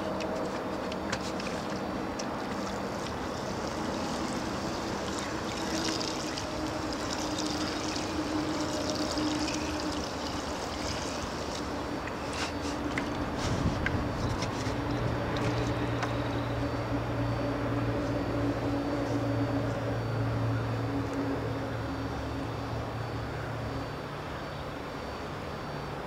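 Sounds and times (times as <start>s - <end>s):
engine drone with low hum: 0.0s - 26.0s.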